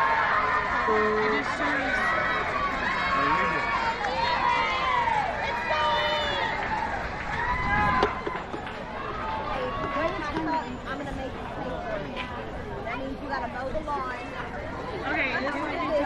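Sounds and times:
spectators calling and shouting: 0:00.0 - 0:16.0.

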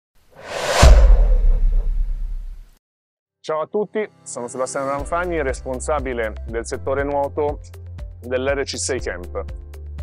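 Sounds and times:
deep low hit with rumble: 0:00.4 - 0:02.7
whoosh: 0:00.4 - 0:02.8.

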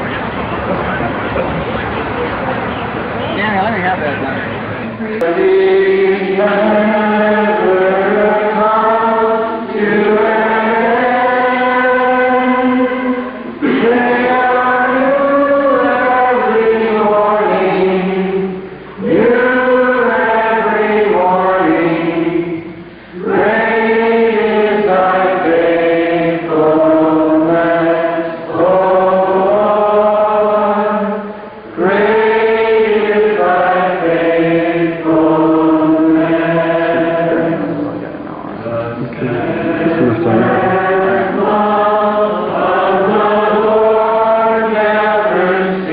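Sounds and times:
group singing slow song: 0:05.0 - 0:45.9.

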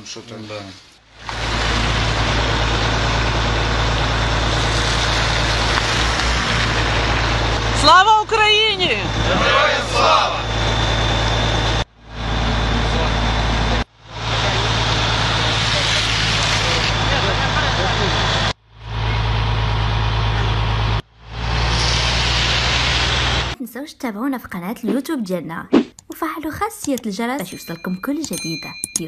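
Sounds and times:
vehicle engine rumbling: 0:00.0 - 0:23.6
loud hiss: 0:21.6 - 0:23.6.

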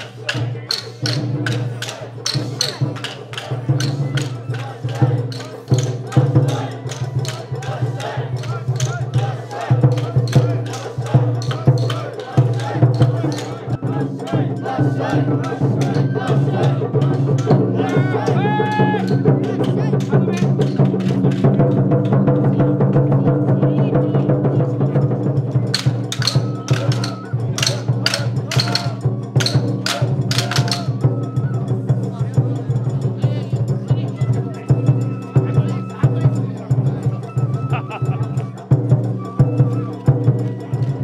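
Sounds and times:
sharp clacks: 0:00.0 - 0:13.7, 0:19.0 - 0:21.8, 0:25.7 - 0:31.0
voices calling out: 0:00.0 - 0:21.6, 0:25.2 - 0:41.0
taiko drums beating: 0:00.0 - 0:41.0.

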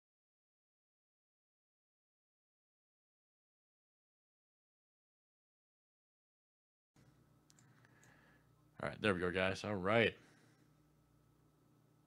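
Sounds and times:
low steady hum: 0:07.0 - 0:12.0
faint clicks: 0:07.4 - 0:08.2.

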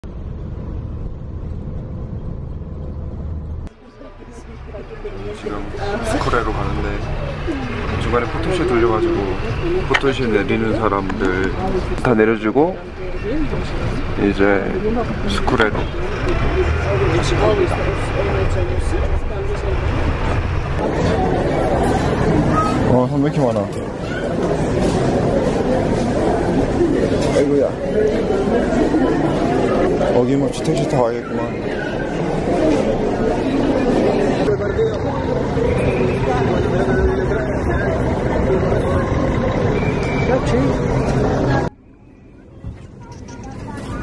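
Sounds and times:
bus engine and road rumble: 0:00.0 - 0:44.0
voices talking: 0:03.7 - 0:44.0.

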